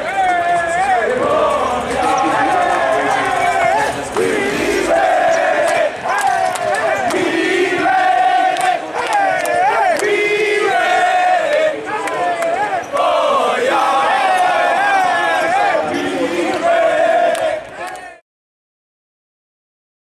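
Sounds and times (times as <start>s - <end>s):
group of men chanting: 0.6s - 18.2s.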